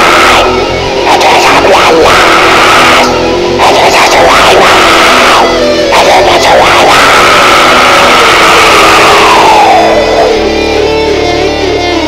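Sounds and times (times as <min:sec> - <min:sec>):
distorted heavy metal music: 0:00.0 - 0:12.0.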